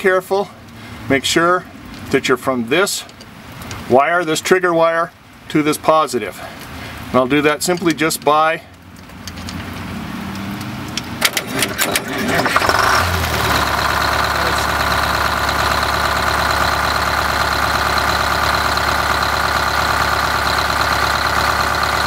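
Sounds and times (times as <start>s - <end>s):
sharp electrical clicks: 7.6s - 19.2s
starter motor cranking: 11.2s - 22.0s
diesel engine idling: 11.4s - 22.0s.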